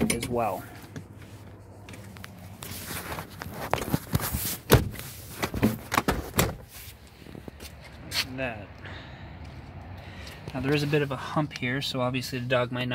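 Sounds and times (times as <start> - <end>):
seat rustling: 0.3 - 7.9.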